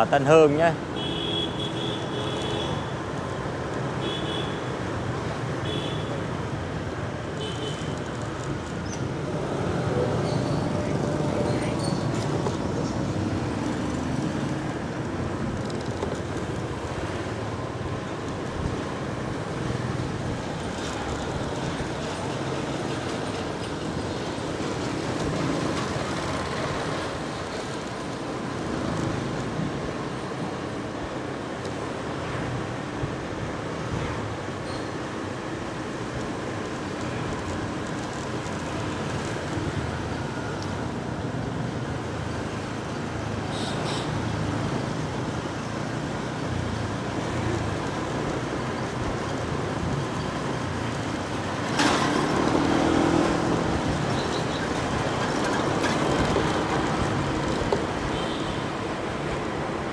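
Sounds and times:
motorbikes passing: 47.4s - 58.2s.

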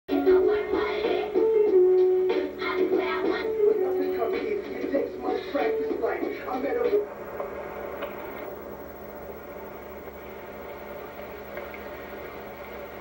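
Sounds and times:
song through television speaker: 0.1s - 8.5s
tape hiss: 0.1s - 13.0s
low hum: 2.5s - 13.0s.

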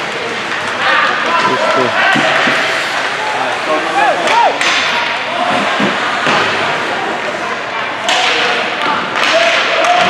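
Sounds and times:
skates scraping ice: 0.0s - 7.5s
people calling out: 1.2s - 2.7s.

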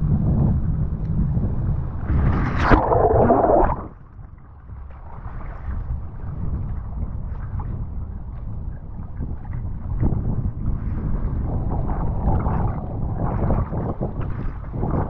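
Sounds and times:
wind buffeting microphone: 0.0s - 15.0s
water sloshing and splashing: 2.1s - 4.1s.

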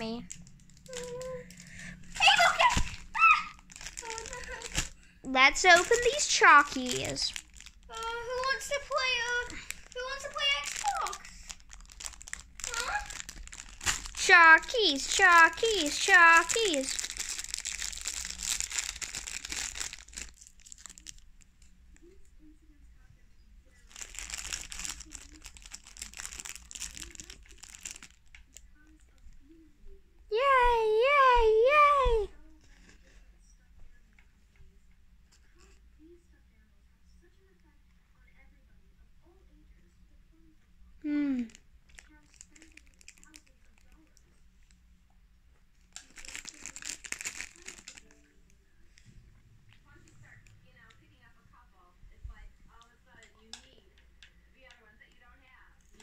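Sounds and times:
plastic bag crinkling: 0.0s - 22.1s, 23.8s - 28.7s, 41.4s - 44.2s, 45.8s - 48.4s.

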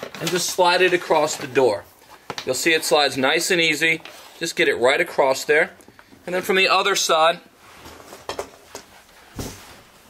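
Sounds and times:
rustling of person shifting: 7.5s - 10.0s.

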